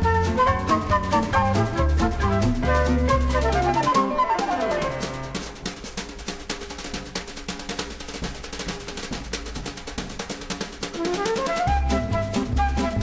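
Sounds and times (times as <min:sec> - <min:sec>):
snare drum roll: 0:00.0 - 0:13.0.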